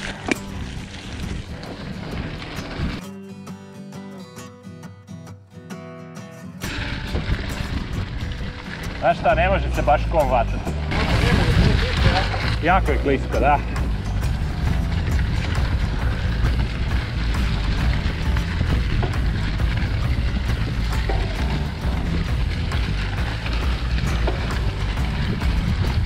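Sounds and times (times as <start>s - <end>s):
tyres crunching through dry leaves: 0.0s - 3.0s, 6.6s - 26.0s
wind rumble on microphone: 0.0s - 3.0s, 6.7s - 26.0s
bike knocks and rattles: 10.8s - 26.0s.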